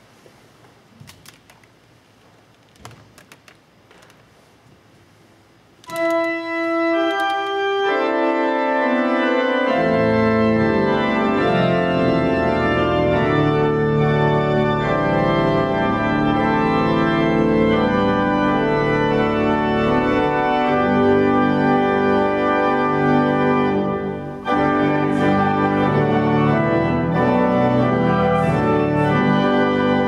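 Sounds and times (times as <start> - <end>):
organ music: 5.8 - 30.0.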